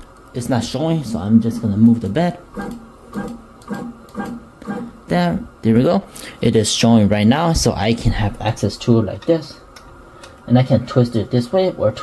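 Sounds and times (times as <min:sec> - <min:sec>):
stepper motor whirs: 0:02.5 - 0:05.4.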